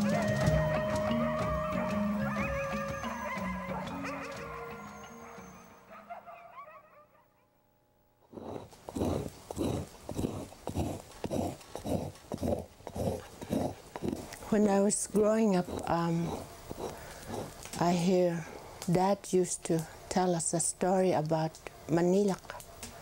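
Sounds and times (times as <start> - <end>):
background music: 0.0 - 6.5
scraper drawn across hide: 8.3 - 14.2, 15.6 - 17.6.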